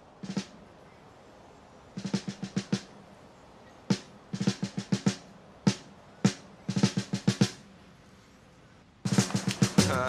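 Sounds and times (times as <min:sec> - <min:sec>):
snare drum hits: 0:03.9 - 0:07.6, 0:09.1 - 0:10.0.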